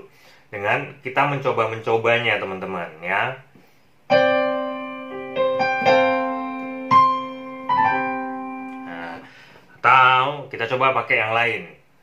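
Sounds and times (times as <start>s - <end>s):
piano chords: 4.1s - 9.4s.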